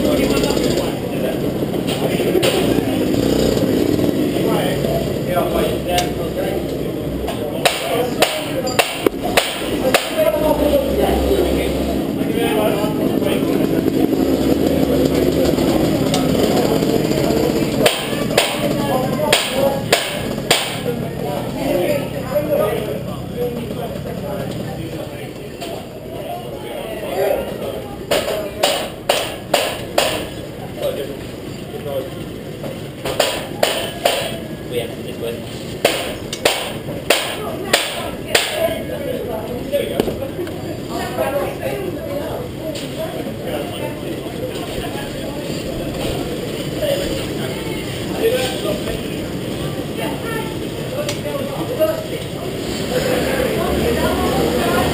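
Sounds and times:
faint background voices: 0.0s - 54.9s
people chattering: 0.0s - 54.9s.

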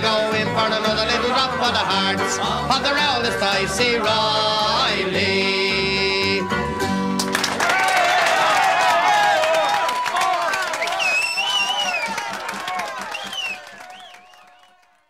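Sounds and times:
live folk song: 0.0s - 7.6s
crowd applauding and cheering: 7.1s - 15.0s.

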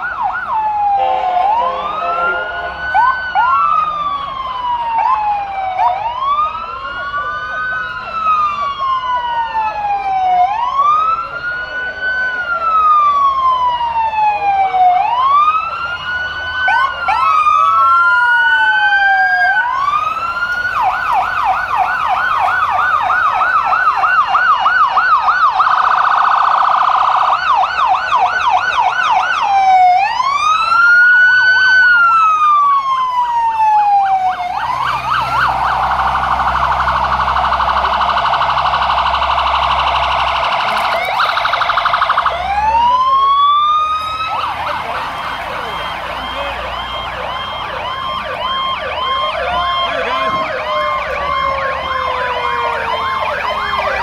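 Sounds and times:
heavy truck engine rumble: 0.0s - 25.5s, 30.2s - 54.0s
fire truck sirens wailing: 0.0s - 54.0s.

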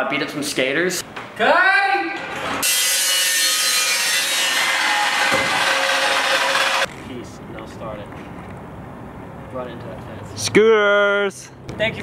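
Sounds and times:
chop saw screeching: 2.5s - 6.9s.

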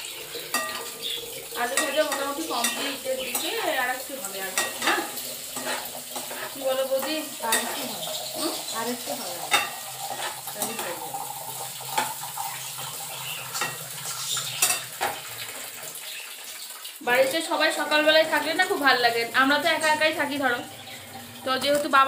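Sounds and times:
frying sizzle: 0.0s - 22.0s
metal spatula scraping pan: 1.7s - 3.7s, 4.5s - 11.0s.

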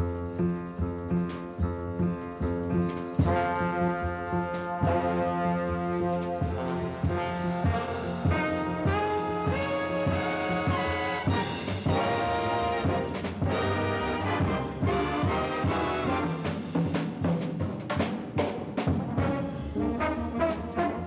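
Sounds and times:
big band jazz: 0.0s - 21.0s
drum and cymbal hits: 2.4s - 19.4s.

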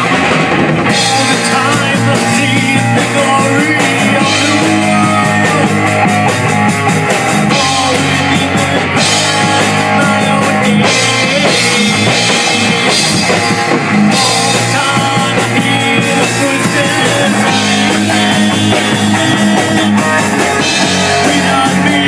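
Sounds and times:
heavy metal band playing: 0.0s - 22.0s.

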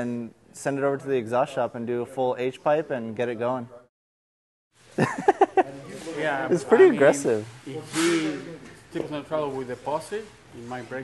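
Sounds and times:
men talking: 5.3s - 11.0s.

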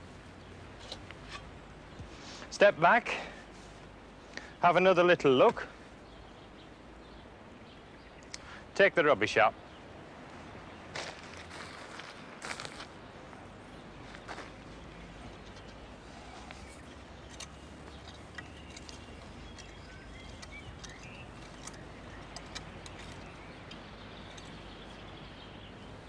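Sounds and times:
steady low hum: 12.2s - 26.0s.

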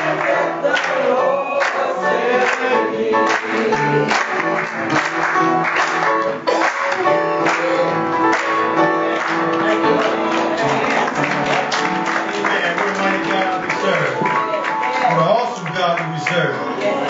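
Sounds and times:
congregation singing gospel song: 0.0s - 17.0s
hand clapping on the beat: 0.0s - 17.0s
upright piano: 0.0s - 17.0s.

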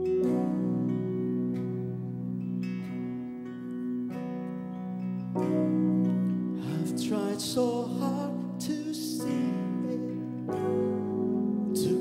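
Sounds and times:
sustained instrumental chords: 0.0s - 12.0s
church worship singing: 6.5s - 12.0s.

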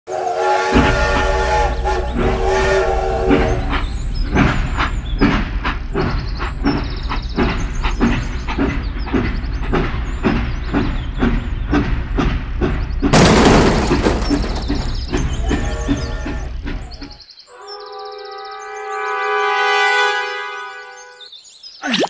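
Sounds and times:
toy steam locomotive whistle: 0.1s - 3.8s
steady locomotive chuffing: 0.1s - 17.3s.

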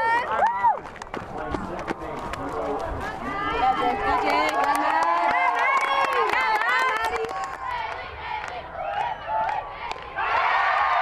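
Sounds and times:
people cheering and shouting: 0.0s - 0.9s, 3.0s - 11.0s
people clapping: 0.4s - 10.1s.

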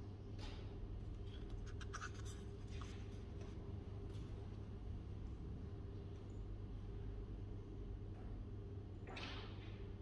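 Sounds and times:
low room hum: 0.0s - 10.0s
book page turning: 1.7s - 3.2s.

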